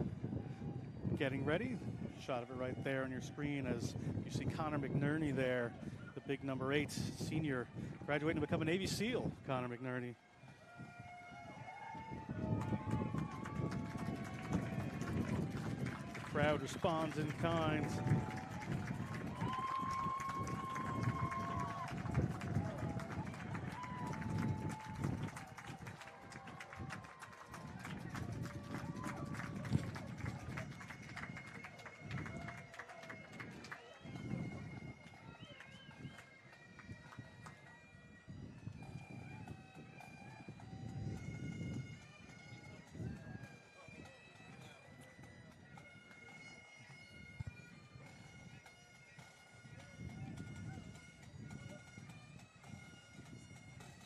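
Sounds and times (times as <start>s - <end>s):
bagpipes playing: 11.0s - 26.0s, 27.6s - 54.0s
crowd murmur: 11.4s - 37.6s.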